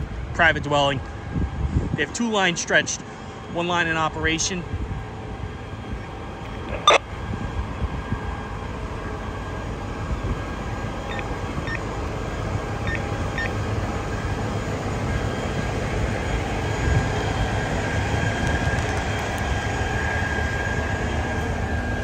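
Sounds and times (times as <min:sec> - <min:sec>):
diesel engines running: 0:00.0 - 0:22.0
short beeps: 0:06.7 - 0:07.0, 0:11.1 - 0:11.8, 0:12.9 - 0:13.6.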